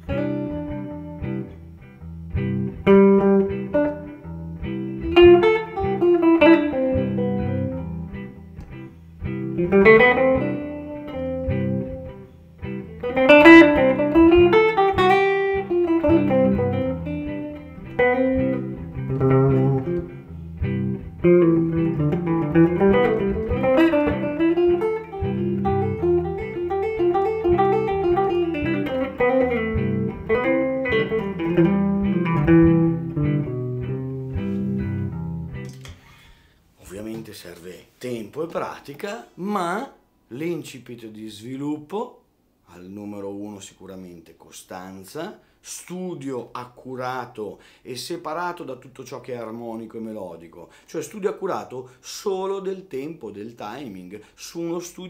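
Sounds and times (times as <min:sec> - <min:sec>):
jazz guitar single-note phrases: 0:00.0 - 0:36.5
backing track with beat: 0:13.0 - 0:36.5.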